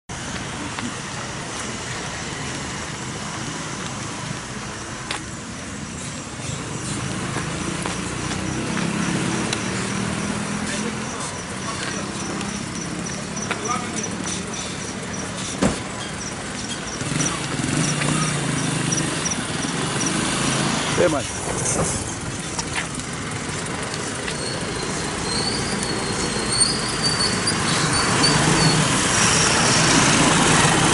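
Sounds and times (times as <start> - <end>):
motorcycle engines: 0.1 - 30.9
traffic background: 0.1 - 30.9
people talking: 10.5 - 19.4, 20.9 - 21.9.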